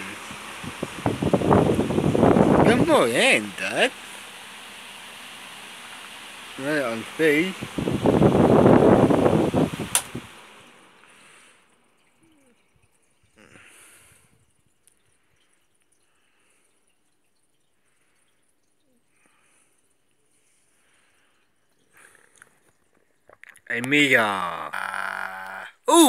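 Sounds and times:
fan airflow rushing: 0.0 - 11.6
fan switch click: 9.8 - 10.3.

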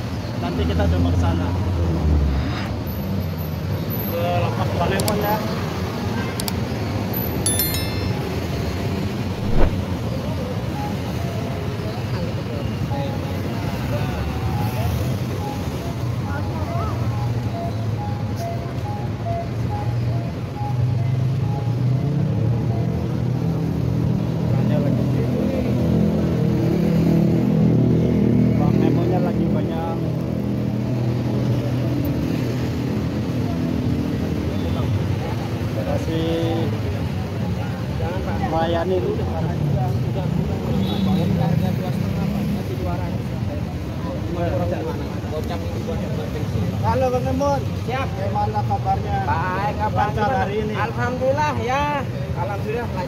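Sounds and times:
traffic and motorbikes passing: 0.0 - 53.0.

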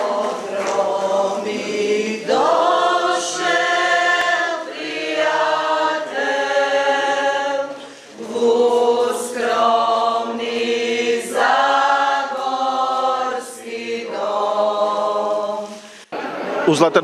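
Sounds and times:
women singing unaccompanied: 0.0 - 15.7.

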